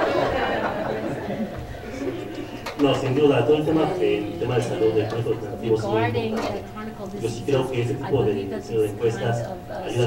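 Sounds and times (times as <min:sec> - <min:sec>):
man speaking into a microphone: 0:02.8 - 0:06.2, 0:07.2 - 0:10.0.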